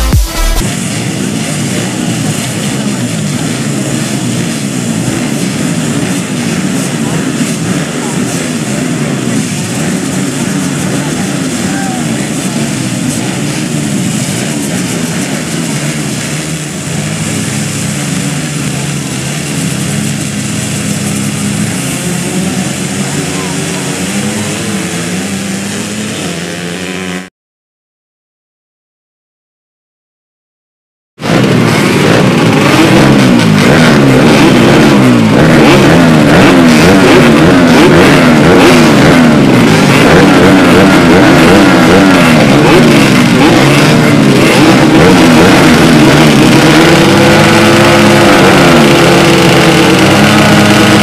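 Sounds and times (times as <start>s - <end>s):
motocross bike engines revving: 0.0s - 27.3s, 31.2s - 51.0s.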